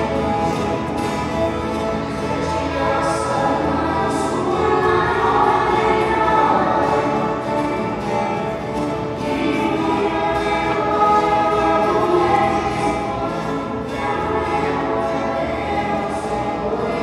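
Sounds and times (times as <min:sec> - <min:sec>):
folk guitars strumming and picking: 0:00.0 - 0:17.0
young voices singing together: 0:00.0 - 0:17.0.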